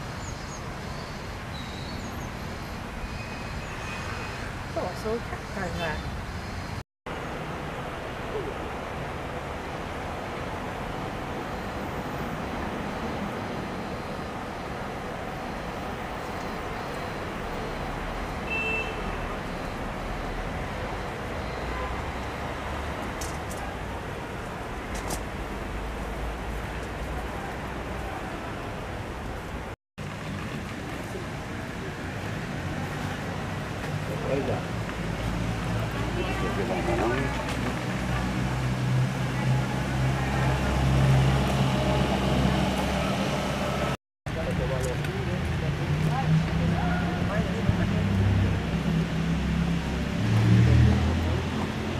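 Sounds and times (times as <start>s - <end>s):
distant road traffic rumble: 0.0s - 51.9s.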